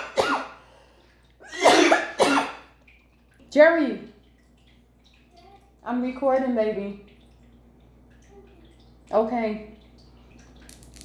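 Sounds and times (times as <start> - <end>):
woman coughing hard: 0.0 - 0.6, 1.4 - 2.7.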